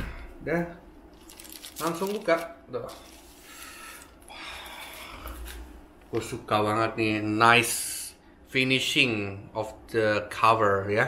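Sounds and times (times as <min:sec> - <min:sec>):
plastic wrapping crinkling: 0:01.1 - 0:05.6.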